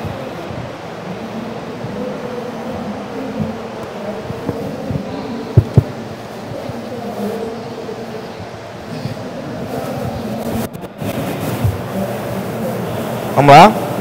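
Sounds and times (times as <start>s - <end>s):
busy hall murmur: 0.0s - 14.0s.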